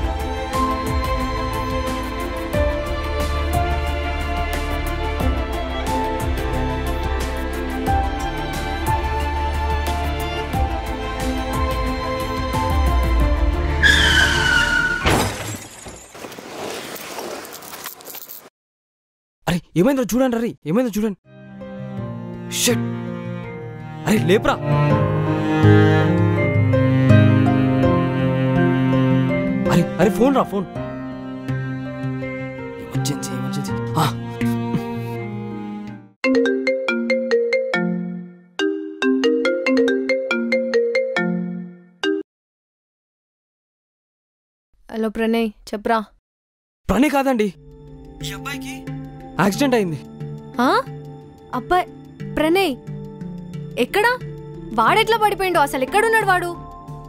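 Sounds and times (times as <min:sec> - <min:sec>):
background music with drone: 0:00.0 - 0:13.9, 0:21.4 - 0:30.0, 0:47.6 - 0:56.0
car tyres screeching: 0:13.8 - 0:15.1
crash impact: 0:14.9 - 0:17.2
soft background music: 0:47.0 - 0:57.0.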